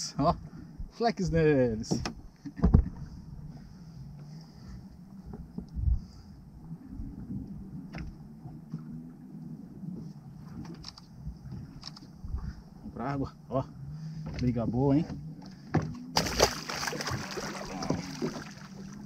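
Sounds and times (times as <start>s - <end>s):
water lapping against boat hull: 1.6s - 19.0s
thumps against boat: 1.8s - 3.1s, 14.2s - 18.4s.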